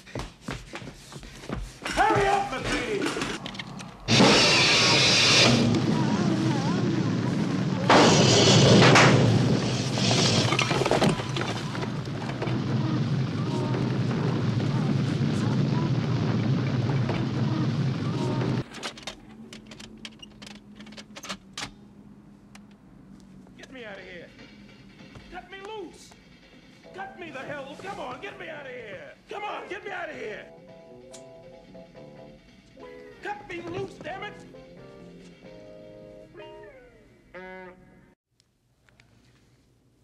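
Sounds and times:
loud crashing bursts: 4.0 - 18.7.

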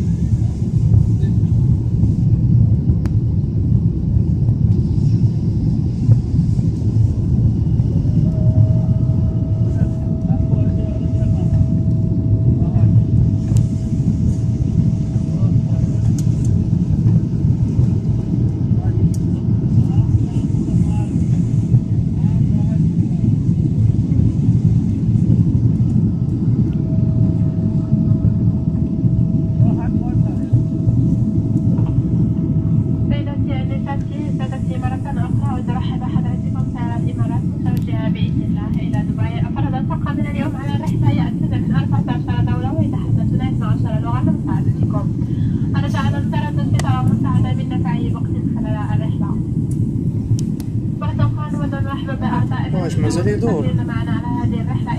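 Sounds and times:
faint steady whine: 0.0 - 54.9
jet engine roar in cabin: 0.0 - 54.9
voices: 8.1 - 16.5, 32.9 - 49.5, 51.0 - 54.9.

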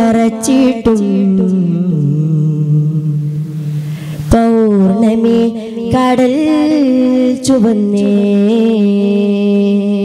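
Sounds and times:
boys singing long low note: 0.0 - 10.0.

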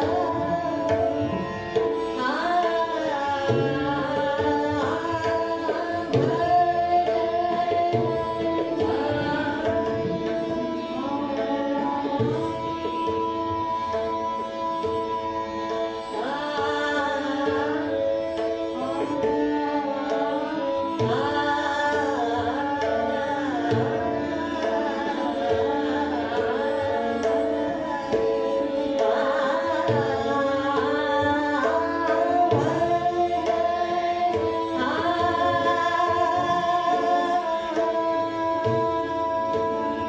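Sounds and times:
tabla strokes: 0.0 - 40.0
tanpura drone: 0.0 - 40.0
woman singing classical vocals: 0.0 - 40.0.

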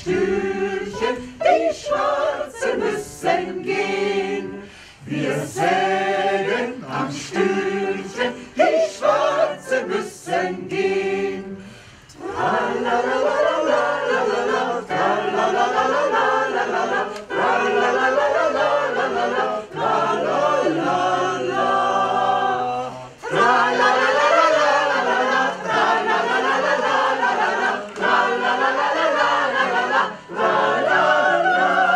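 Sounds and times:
choir singing a cappella: 0.0 - 31.9.

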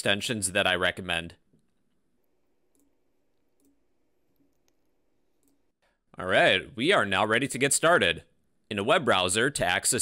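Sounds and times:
soft computer mouse clicks: 2.7 - 3.0, 3.6 - 5.7.

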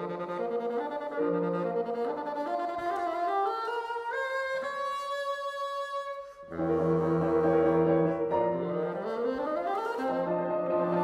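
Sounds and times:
piano accompaniment: 0.0 - 5.3, 6.5 - 11.0
bassoon playing: 0.0 - 11.0.

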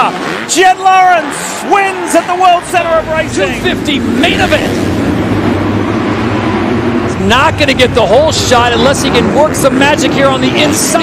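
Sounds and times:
motorbike engines racing: 0.0 - 11.0.

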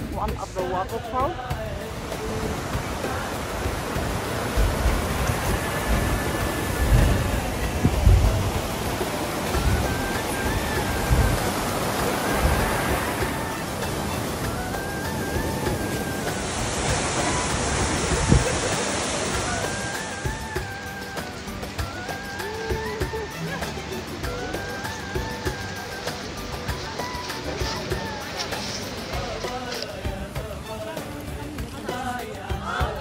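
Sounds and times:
background music melody: 0.0 - 33.0
stream rushing over rocks: 0.0 - 33.0
low thumps: 1.6 - 14.1.

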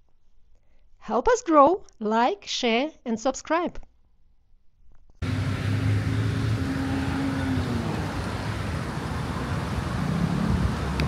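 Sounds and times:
steady traffic hiss: 5.2 - 11.0
vehicles passing: 5.2 - 11.0.

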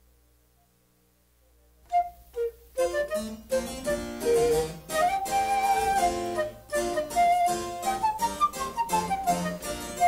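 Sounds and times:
flute notes: 1.8 - 10.0
harpsichord playing: 2.9 - 10.0.

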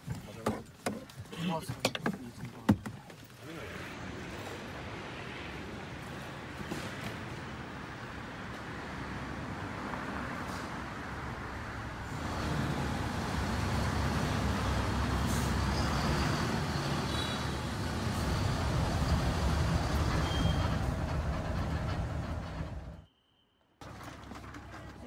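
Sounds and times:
bus engine and road noise: 0.0 - 23.1, 23.8 - 25.0.

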